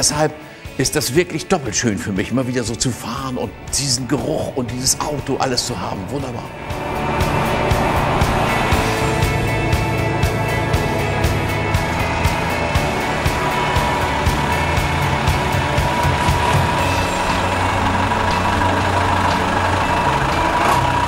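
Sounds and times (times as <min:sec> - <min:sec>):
diesel engine running: 0:02.7 - 0:21.0.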